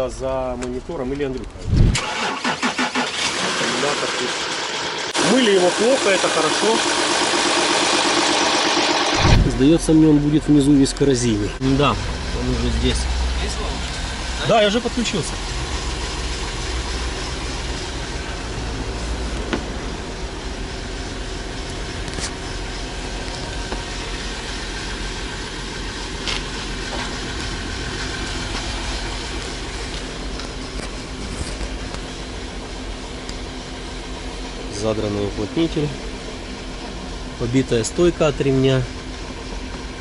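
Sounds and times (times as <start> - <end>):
car engine idling: 0.0 - 40.0.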